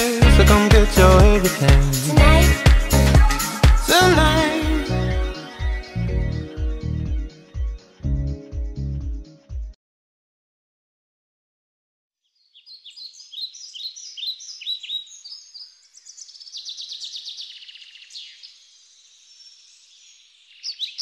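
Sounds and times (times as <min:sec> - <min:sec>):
songbirds chirping: 0:12.2 - 0:21.0
bird trill: 0:12.3 - 0:18.6, 0:19.2 - 0:21.0.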